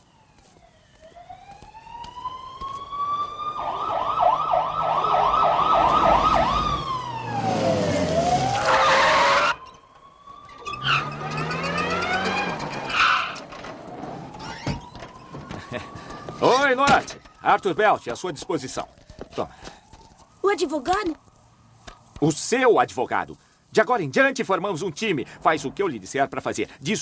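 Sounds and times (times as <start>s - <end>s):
emergency vehicle siren: 0.0s - 22.5s.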